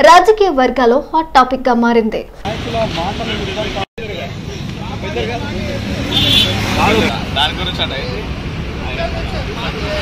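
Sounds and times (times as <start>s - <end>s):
road traffic: 2.4s - 10.0s
motorbike passing: 2.5s - 10.0s.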